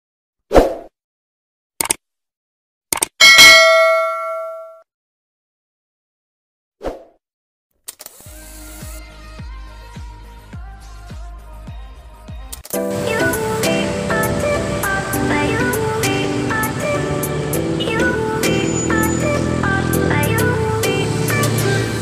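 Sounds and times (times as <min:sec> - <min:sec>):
sharp clicks: 0:01.8 - 0:02.0, 0:02.9 - 0:03.2
bright bell ding: 0:03.2 - 0:04.8.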